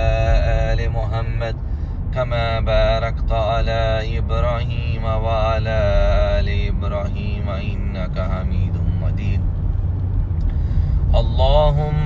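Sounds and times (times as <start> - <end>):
person reciting: 0.0 - 9.4, 11.1 - 12.0
car driving rumble: 0.0 - 12.0.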